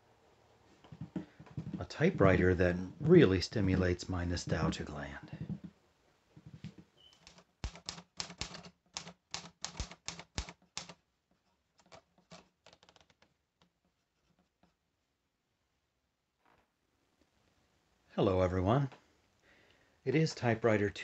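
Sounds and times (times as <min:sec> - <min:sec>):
typewriter key strikes: 0:07.2 - 0:11.0.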